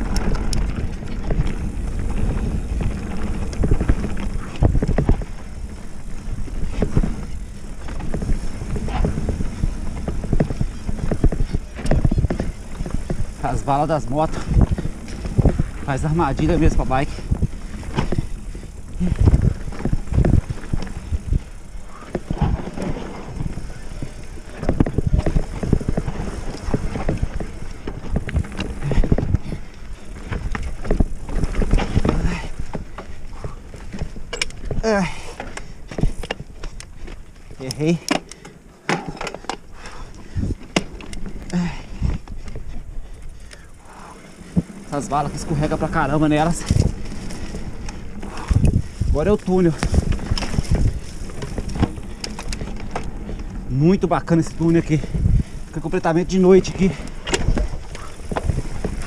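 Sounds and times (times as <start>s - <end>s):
mountain bike rattling and knocking: 0.0s - 59.0s
steady rumble: 0.0s - 59.0s.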